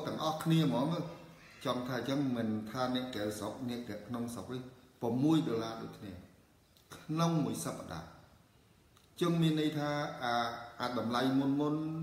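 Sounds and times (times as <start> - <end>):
man speaking: 0.0 - 8.4, 9.2 - 12.0.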